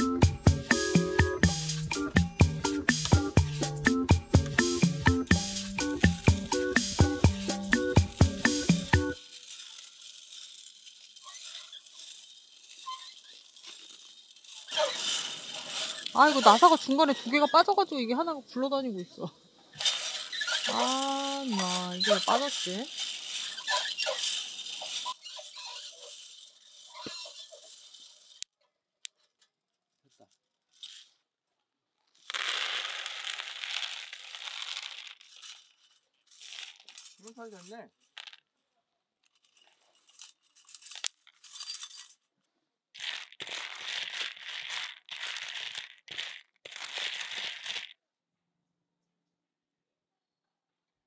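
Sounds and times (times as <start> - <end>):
coffee beans rattling into basket: 0.1 - 18.0, 19.8 - 28.4, 32.2 - 38.5, 39.3 - 42.2, 43.0 - 48.0.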